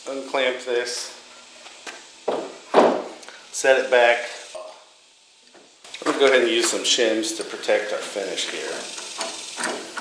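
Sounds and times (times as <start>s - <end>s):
knock of board on workbench: 2.3s - 3.1s
person speaking: 6.0s - 8.9s.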